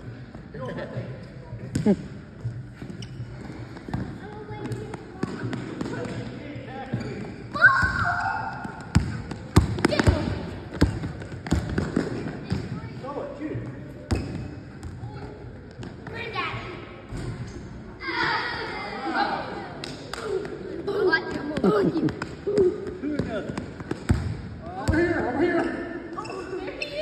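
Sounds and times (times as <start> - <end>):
basketballs bouncing on gym floor: 1.6 - 6.3, 6.9 - 12.8, 13.6 - 16.2, 21.6 - 25.3
players' voices and shouts: 4.2 - 10.6, 17.9 - 23.7, 24.6 - 27.0.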